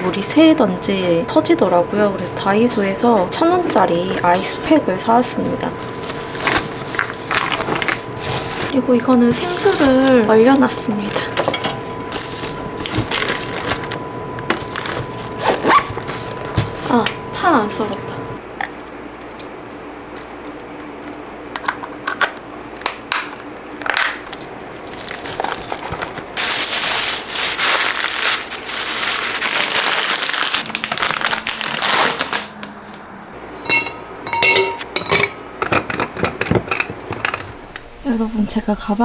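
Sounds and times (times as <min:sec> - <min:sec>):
plastic bags crinkling: 0:05.8 - 0:10.6, 0:12.1 - 0:16.4, 0:23.9 - 0:33.0.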